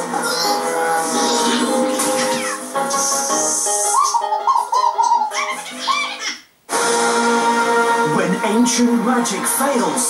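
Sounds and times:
whistle-like melody: 0:02.8 - 0:04.4.

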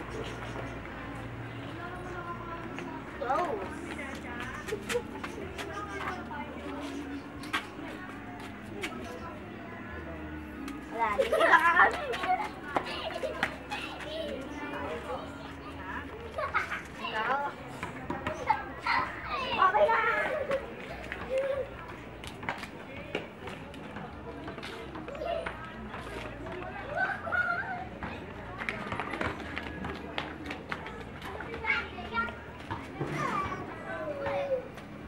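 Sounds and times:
young children's voices playing: 0:00.0 - 0:22.2, 0:26.5 - 0:28.4, 0:31.2 - 0:35.0.

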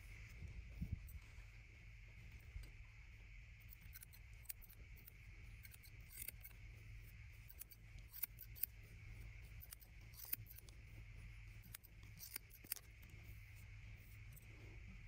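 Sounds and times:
low background hum: 0:00.0 - 0:15.0
scissors snipping hair: 0:03.7 - 0:06.6, 0:07.4 - 0:08.8, 0:09.4 - 0:10.8, 0:11.6 - 0:13.1.

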